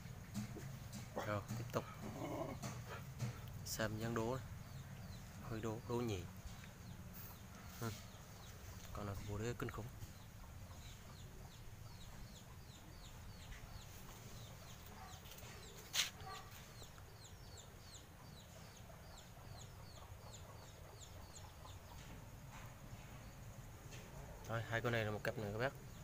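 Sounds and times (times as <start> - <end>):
faint bird chirping: 0.0 - 26.0.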